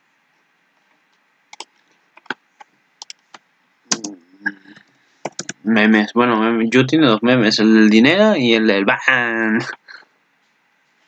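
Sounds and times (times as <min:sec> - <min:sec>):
computer clicks: 0:01.5 - 0:02.4, 0:03.0 - 0:05.6
man's voice humming low: 0:03.9 - 0:04.8.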